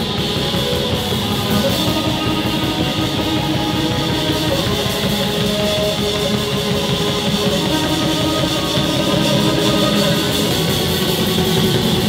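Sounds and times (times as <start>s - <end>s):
drum kit: 0.0s - 12.0s
strummed electric guitar: 0.0s - 12.0s.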